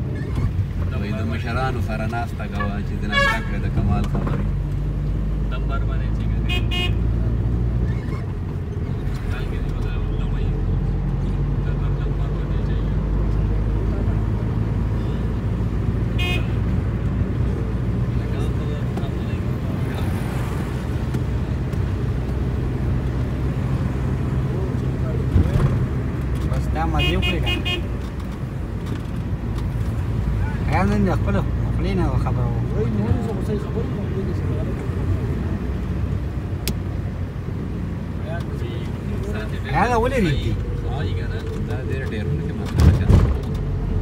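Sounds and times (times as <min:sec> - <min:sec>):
tyre and road noise: 0:00.0 - 0:44.0.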